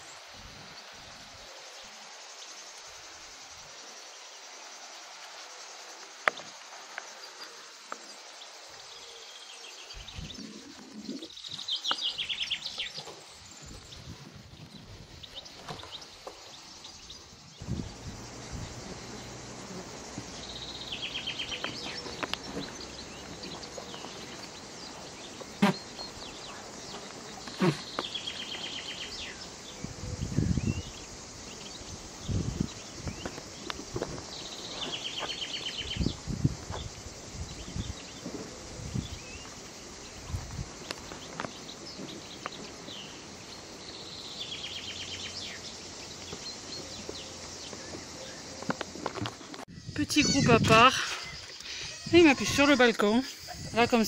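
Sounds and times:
outdoor background noise: 0:00.0 - 0:54.0
songbird trilling: 0:16.9 - 0:26.6, 0:49.8 - 0:54.0.

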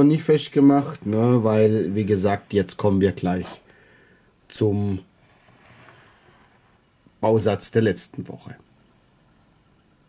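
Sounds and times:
soft faint rustle: 0:04.9 - 0:07.2.

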